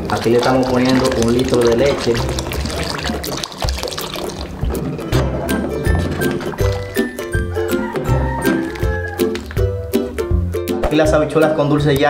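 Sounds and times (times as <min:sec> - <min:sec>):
milk pouring into a pot: 0:00.0 - 0:09.8.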